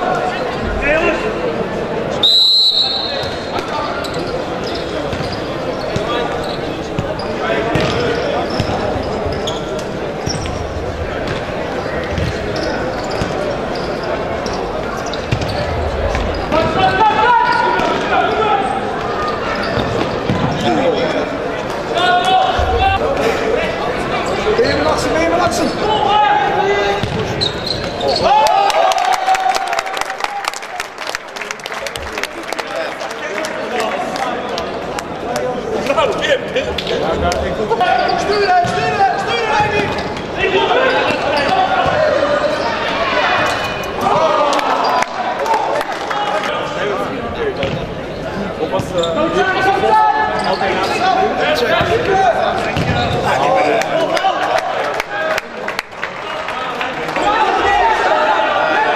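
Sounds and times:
shoes squeaking on court floor: 0:02.8 - 0:18.1, 0:18.7 - 0:21.9, 0:26.8 - 0:28.3, 0:36.6 - 0:44.2, 0:47.5 - 0:53.7
players shouting: 0:16.3 - 0:19.9, 0:20.5 - 0:30.6, 0:37.6 - 0:47.2, 0:48.4 - 0:58.9.

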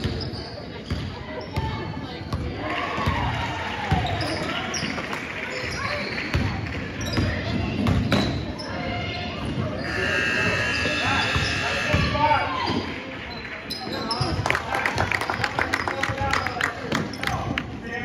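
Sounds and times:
voices calling out: 0:08.6 - 0:14.3.

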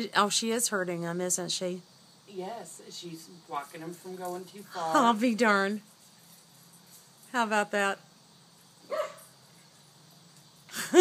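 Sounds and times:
dog yipping: 0:08.8 - 0:09.3.

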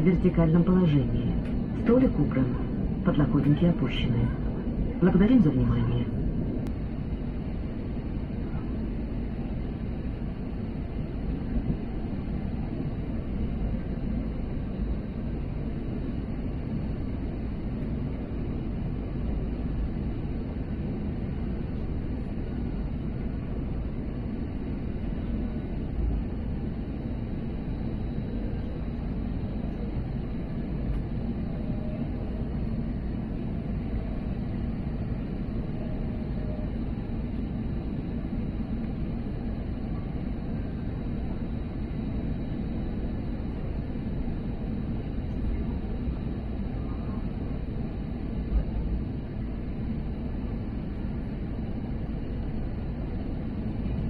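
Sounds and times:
airliner cabin rumble: 0:00.0 - 0:54.0
faint high engine whine: 0:00.0 - 0:54.0.

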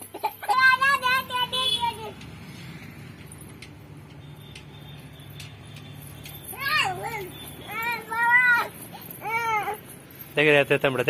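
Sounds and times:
child's high-pitched wordless calls: 0:00.3 - 0:02.2, 0:06.5 - 0:09.9.

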